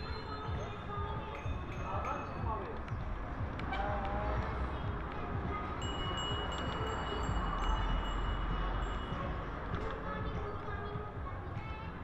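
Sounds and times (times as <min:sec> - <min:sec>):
low rumble of riding: 0:00.0 - 0:12.0
bicycle bell ringing: 0:05.8 - 0:09.4.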